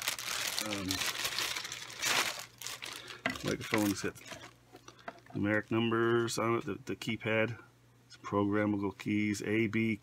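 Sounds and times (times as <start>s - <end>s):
plastic packaging crinkling: 0.0s - 6.4s.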